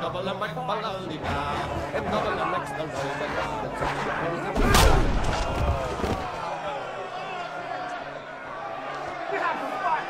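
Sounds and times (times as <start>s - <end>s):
crowd shouting: 1.2s - 10.0s.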